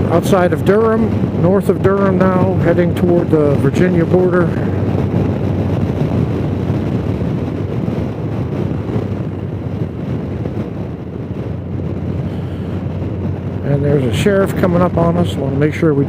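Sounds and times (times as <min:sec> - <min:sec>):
motorcycle engine drone: 0:00.0 - 0:16.0
road noise: 0:00.0 - 0:16.0
wind rushing on microphone: 0:00.0 - 0:16.0.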